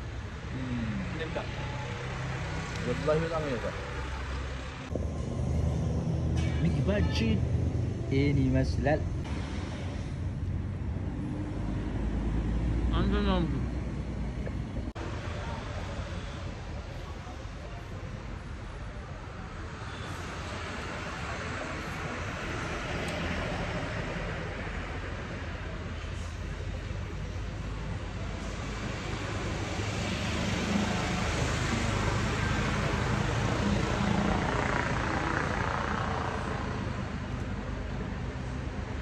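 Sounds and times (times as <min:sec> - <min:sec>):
road traffic passing: 0:00.0 - 0:39.0.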